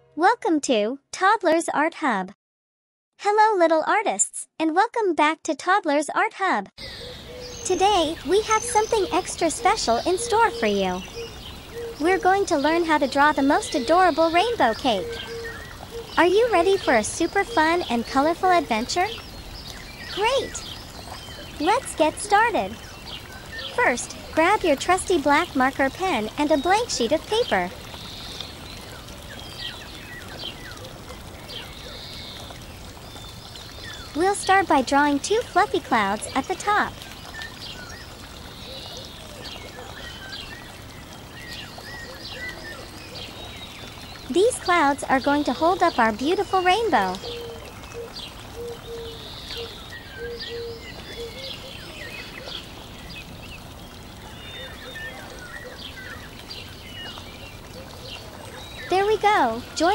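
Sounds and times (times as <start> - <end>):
birds chirping: 6.8 - 59.9.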